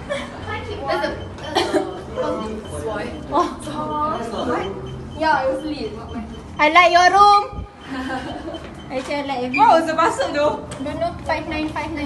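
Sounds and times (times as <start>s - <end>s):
young people talking: 0.0s - 12.0s.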